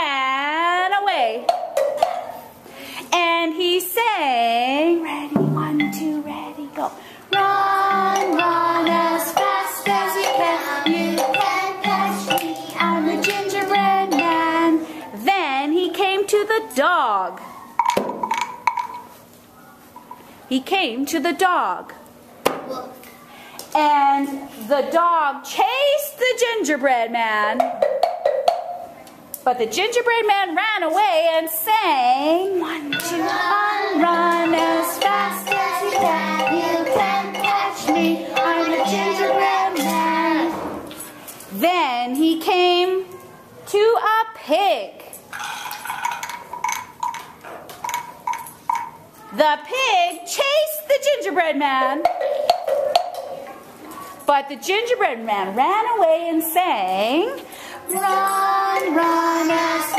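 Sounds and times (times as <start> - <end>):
pitched percussion strikes: 5.3 - 6.4, 7.3 - 15.0, 27.6 - 28.9, 32.9 - 40.7, 57.9 - 59.9.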